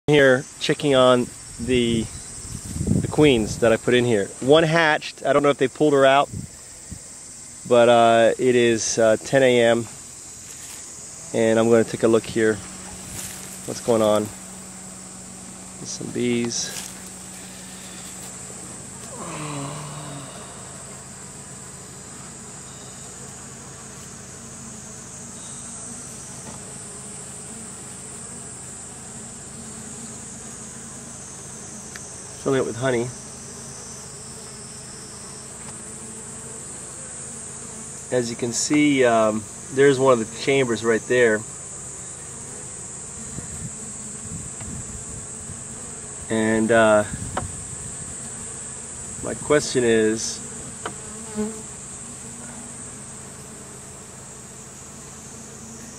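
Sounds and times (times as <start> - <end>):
high-pitched insect chorus: 0.1 - 55.9
honeybees buzzing: 0.1 - 55.9.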